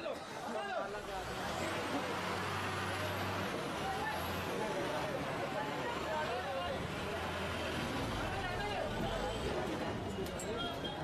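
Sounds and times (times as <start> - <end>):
voices of people: 0.0 - 11.0.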